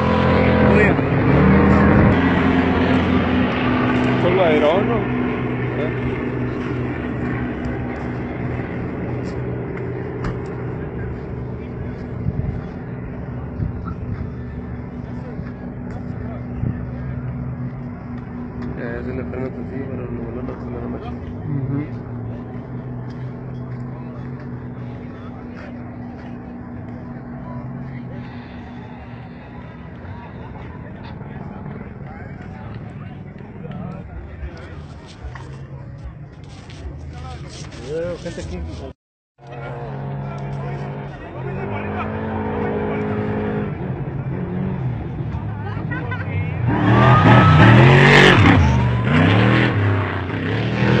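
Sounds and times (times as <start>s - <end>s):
people talking: 0.0s - 1.1s, 4.0s - 9.6s, 10.2s - 49.7s
steady engine drone: 0.0s - 51.0s.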